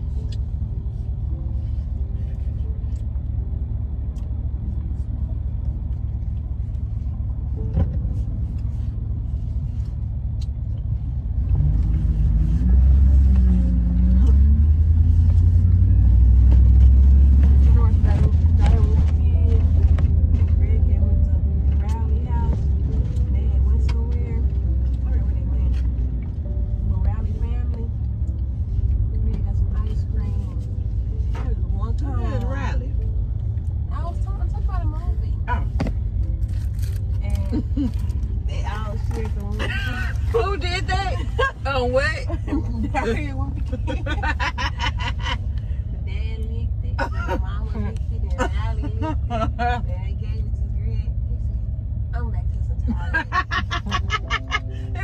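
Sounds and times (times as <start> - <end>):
car cabin rumble while driving: 0.0 - 55.0.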